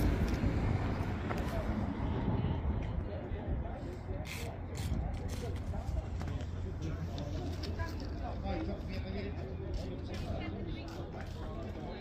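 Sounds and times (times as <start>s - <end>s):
background chatter of people: 0.0s - 12.0s.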